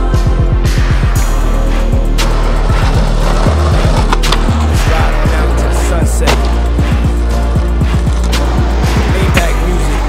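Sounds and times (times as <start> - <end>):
music with heavy bass: 0.0 - 10.0
skateboard wheels rolling on asphalt: 2.3 - 5.8.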